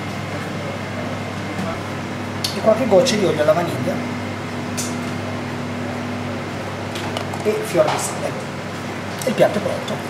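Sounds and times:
ventilation fan hum and hiss: 0:00.0 - 0:10.0.

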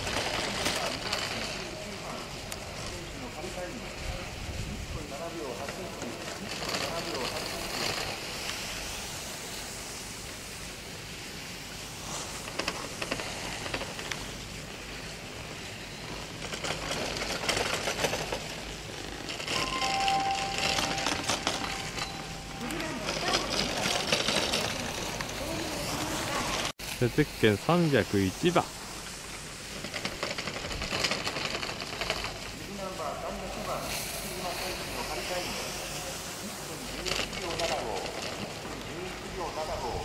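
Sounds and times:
skis scraping on snow: 0:05.1 - 0:40.0.

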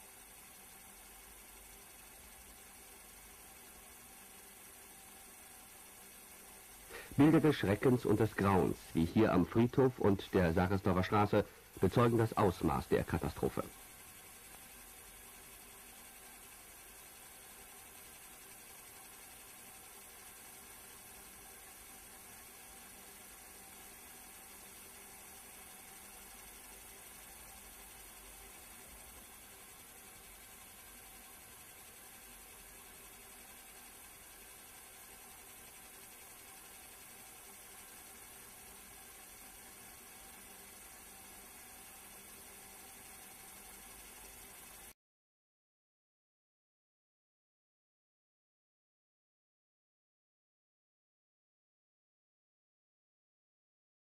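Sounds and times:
film hiss with low hum: 0:00.0 - 0:45.0.

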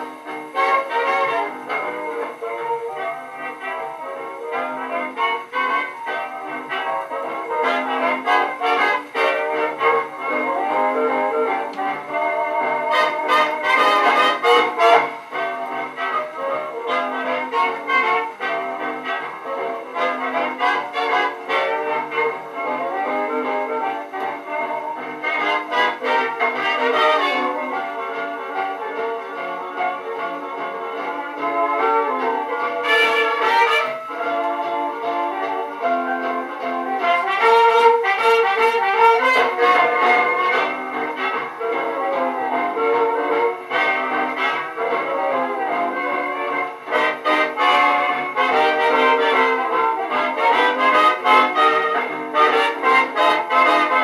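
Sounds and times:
dance orchestra with brass: 0:00.0 - 0:54.0.

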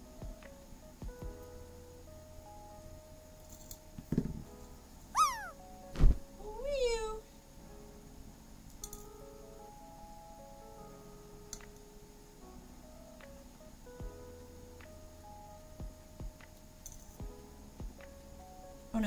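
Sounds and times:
soft background music: 0:00.0 - 0:19.0
cat meowing: 0:05.2 - 0:05.6.

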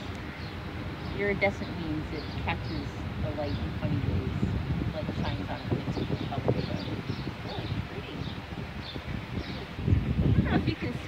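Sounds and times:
small birds chirping: 0:00.0 - 0:11.0
wind rumble on microphone: 0:00.0 - 0:11.0.

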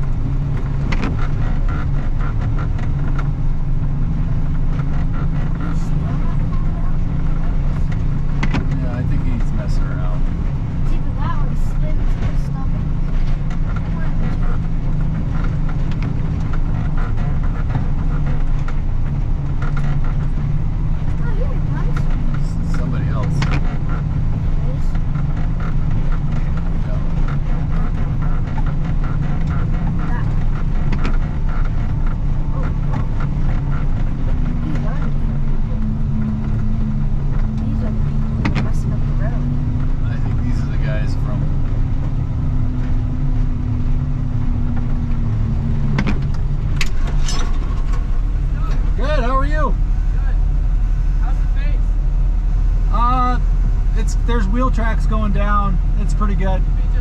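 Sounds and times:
snow plow engine droning: 0:00.0 - 0:57.0
voices: 0:05.1 - 0:15.2, 0:21.0 - 0:25.7, 0:26.6 - 0:31.6, 0:34.4 - 0:36.4, 0:37.3 - 0:41.6, 0:48.5 - 0:50.5, 0:52.9 - 0:57.0.

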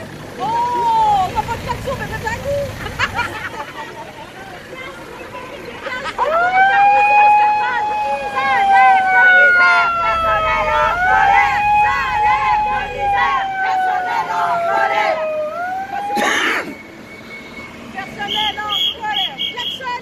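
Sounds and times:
crowd chatter: 0:00.0 - 0:16.8.

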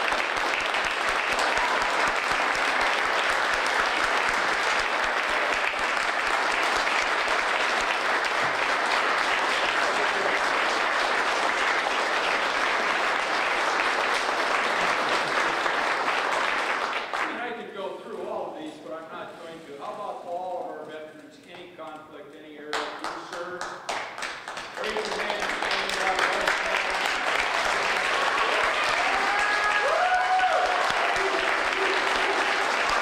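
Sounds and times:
audience applauding: 0:00.0 - 0:17.4, 0:22.8 - 0:33.0.

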